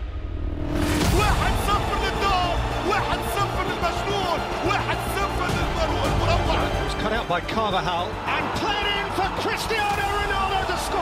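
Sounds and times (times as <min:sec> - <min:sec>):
stadium crowd noise: 0:01.0 - 0:11.0.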